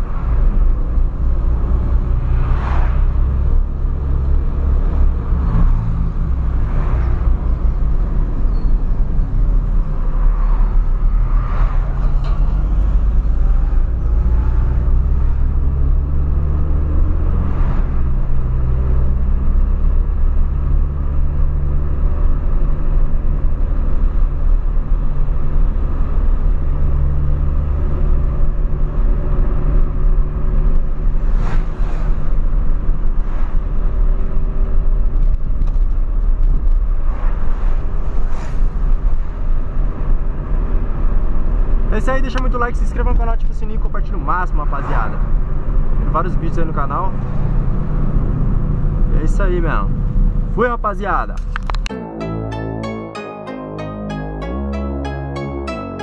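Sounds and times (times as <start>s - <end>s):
road rumble: 0.0s - 53.1s.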